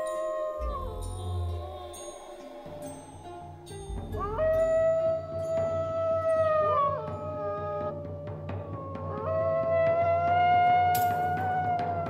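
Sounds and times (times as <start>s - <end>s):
low musical drone: 0.0s - 9.3s
wolf howling: 0.0s - 12.0s.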